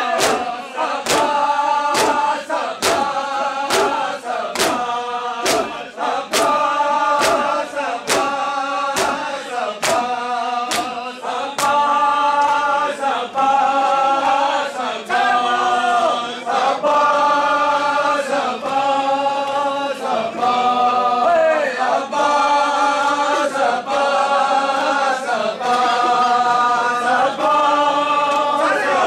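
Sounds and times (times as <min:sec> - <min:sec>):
hands beating chests: 0:00.0 - 0:12.7
men chanting together: 0:00.0 - 0:29.0.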